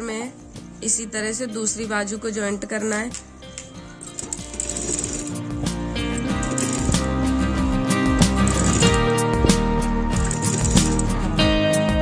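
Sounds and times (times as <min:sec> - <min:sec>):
background music: 0:00.0 - 0:12.0
sewing machine clicking: 0:03.5 - 0:05.4, 0:06.2 - 0:07.1, 0:08.2 - 0:09.1, 0:10.2 - 0:11.1.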